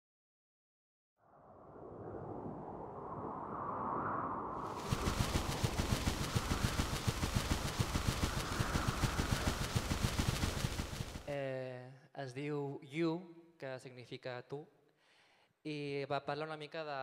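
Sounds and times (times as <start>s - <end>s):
rush of noise: 1.3s - 11.3s
rapid rattling clicks: 4.8s - 11.3s.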